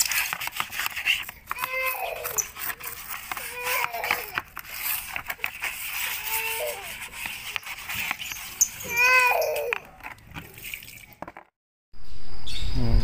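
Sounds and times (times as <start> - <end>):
sponge scrubbing wet plastic tray: 0.0 - 11.4.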